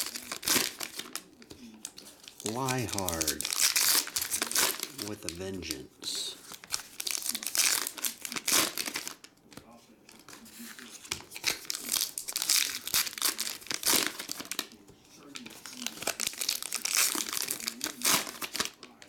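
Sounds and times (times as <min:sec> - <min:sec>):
foil wrappers tearing and crinkling: 0:00.0 - 0:05.4, 0:06.4 - 0:09.3, 0:10.1 - 0:19.0.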